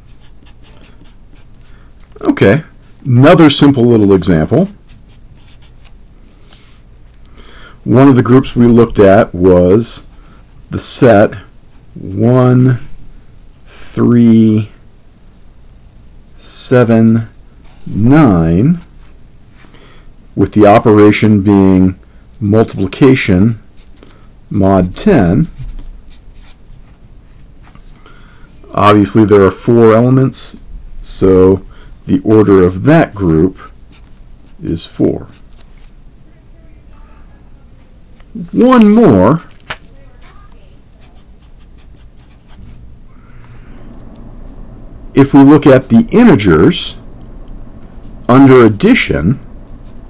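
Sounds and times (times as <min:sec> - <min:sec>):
marker scratching on paper: 0:00.0 - 0:01.8, 0:04.7 - 0:06.0, 0:25.4 - 0:26.6, 0:33.9 - 0:34.6, 0:35.2 - 0:36.0, 0:40.2 - 0:42.9.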